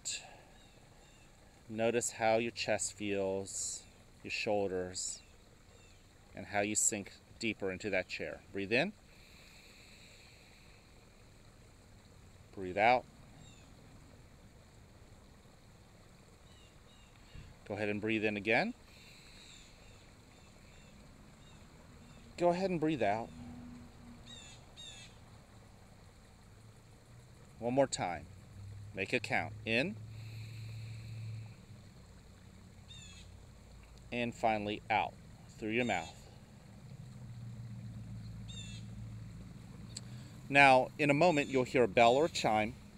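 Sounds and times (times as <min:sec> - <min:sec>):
fountain trickling: 0:00.0 - 0:42.9
low steady hum: 0:00.0 - 0:42.9.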